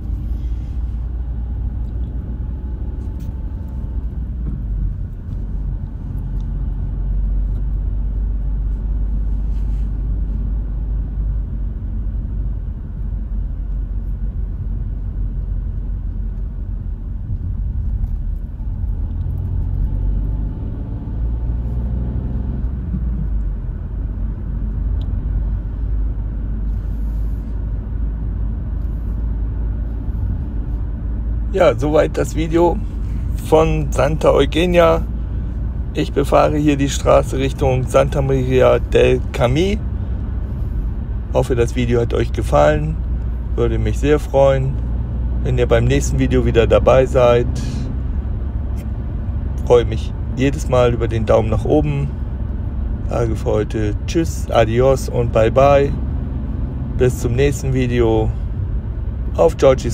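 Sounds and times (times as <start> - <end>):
car engine and tyre rumble: 0.0 - 59.9.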